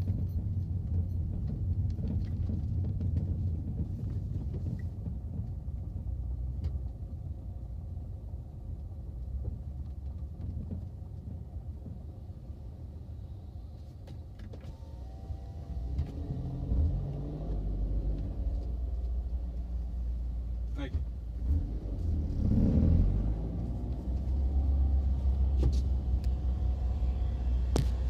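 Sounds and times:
car engine rumble from inside cabin: 0.0s - 28.0s.

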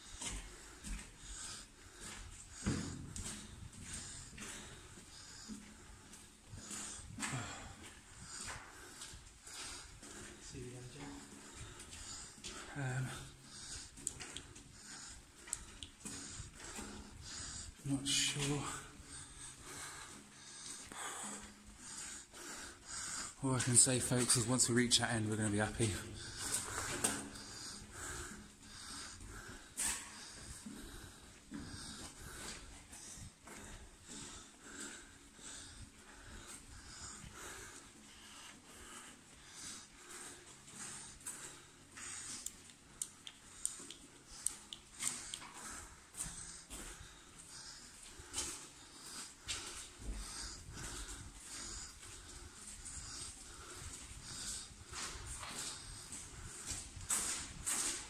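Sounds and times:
footsteps walking uphill: 0.0s - 58.0s
heavy breathing: 0.0s - 58.0s.

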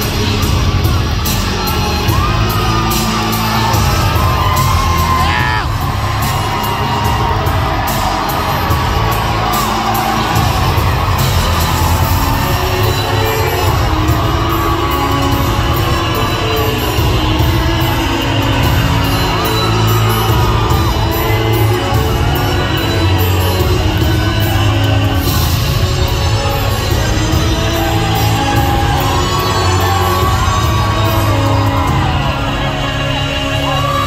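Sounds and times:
crowd cheering and whooping: 0.0s - 34.0s
music with heavy beat over speakers: 0.0s - 34.0s.

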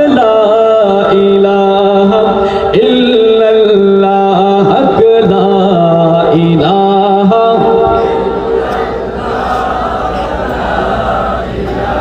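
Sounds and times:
steady low hum: 0.0s - 12.0s
group chanting in unison: 7.8s - 12.0s.

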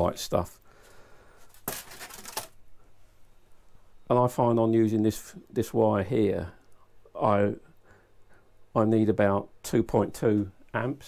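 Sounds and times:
rustle of handling: 0.8s - 3.2s.

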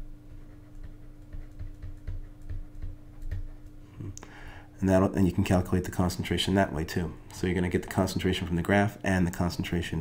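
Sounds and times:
faint electrical hum: 0.0s - 10.0s
stylus tapping on drawing tablet: 0.8s - 3.7s.

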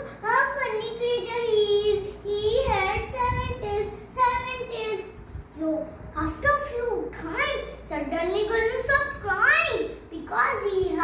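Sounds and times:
girl singing: 0.0s - 11.0s.

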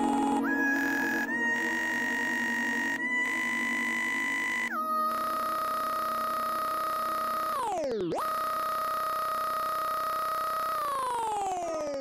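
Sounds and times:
synthesizer tones: 0.0s - 5.5s.

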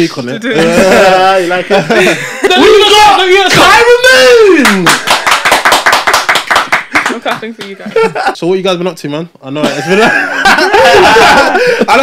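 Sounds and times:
rapid hand claps: 4.6s - 7.8s.

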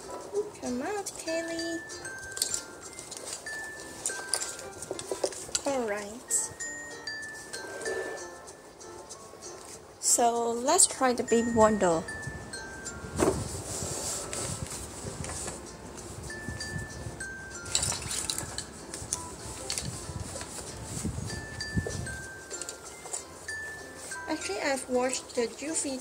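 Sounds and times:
chiming bell-like melody: 1.4s - 9.1s, 11.3s - 14.5s, 16.2s - 19.8s, 21.2s - 25.5s
doll bumping and rustling: 2.1s - 6.2s, 13.1s - 16.8s, 17.5s - 26.0s
thump: 13.2s - 13.5s.

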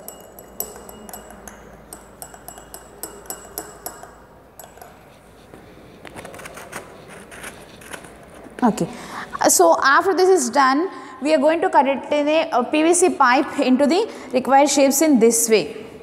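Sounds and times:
stirrer clinking against glass beaker: 0.0s - 5.5s.

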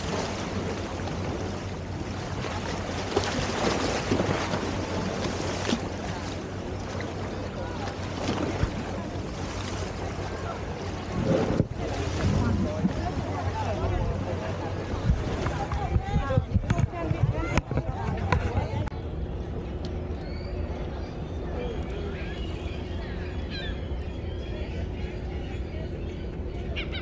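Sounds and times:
waves splashing against seawall: 0.0s - 27.0s
wind buffeting microphone: 11.0s - 27.0s
people's voices: 11.8s - 27.0s.

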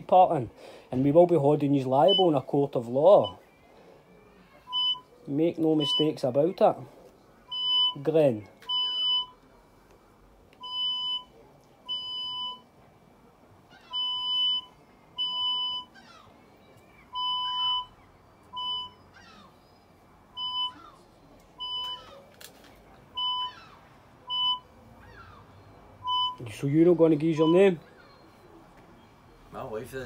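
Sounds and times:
short electronic beeps: 17.1s - 19.1s, 23.2s - 23.6s, 24.3s - 24.7s, 26.0s - 26.6s.

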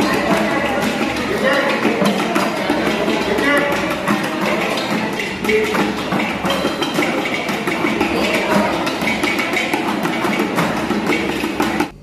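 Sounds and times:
barrel drums beaten fast: 0.0s - 12.0s.

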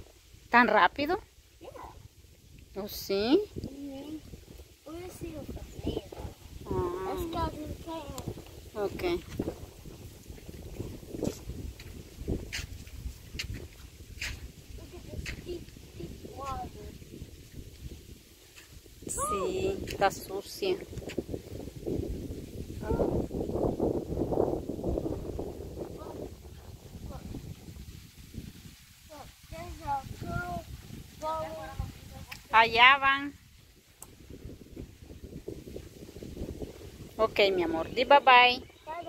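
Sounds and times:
child making wordless sounds: 1.6s - 2.0s, 3.6s - 8.4s, 14.8s - 17.0s, 19.1s - 19.9s, 22.8s - 23.3s, 25.9s - 26.3s, 27.0s - 27.4s, 29.1s - 32.6s.

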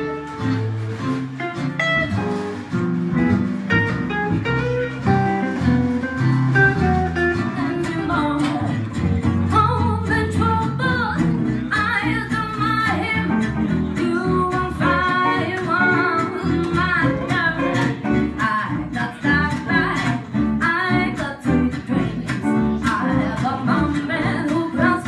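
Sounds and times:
acoustic guitars strumming: 0.0s - 25.0s
plucked double bass: 0.0s - 25.0s
woman singing into microphone: 7.6s - 25.0s.

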